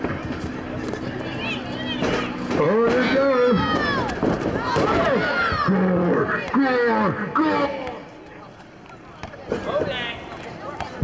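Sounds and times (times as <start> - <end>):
people shouting: 1.4 - 8.0.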